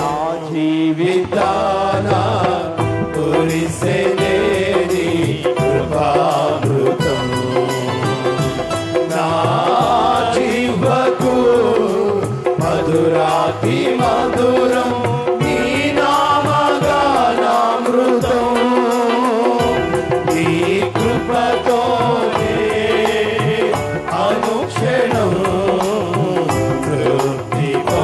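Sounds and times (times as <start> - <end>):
instrumental backing: 0.0 - 28.0
worship song singing: 0.0 - 28.0.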